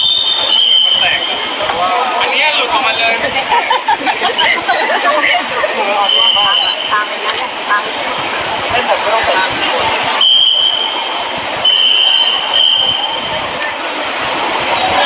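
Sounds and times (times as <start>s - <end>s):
background noise: 0.0s - 15.0s
crowd talking: 0.0s - 15.0s
high steady whine: 0.0s - 15.0s.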